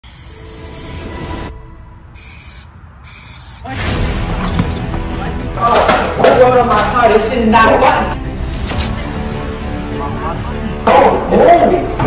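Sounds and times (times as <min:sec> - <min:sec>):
spray paint can hissing: 0:00.0 - 0:01.1, 0:02.2 - 0:03.7.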